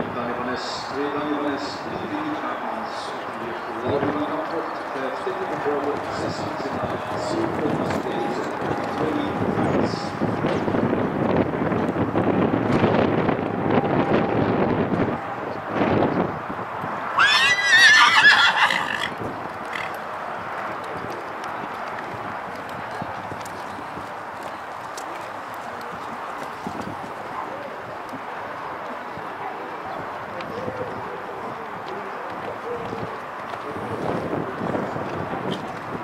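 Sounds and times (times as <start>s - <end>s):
horse neighing: 17.2s - 20.0s.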